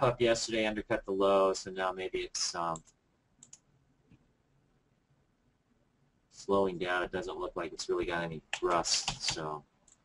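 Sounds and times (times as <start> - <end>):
computer mouse clicks: 2.7 - 4.2.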